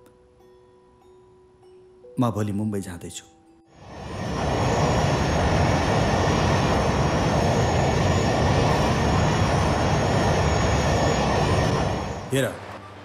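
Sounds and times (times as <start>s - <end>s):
jet engine rumble and whine: 3.8s - 13.0s.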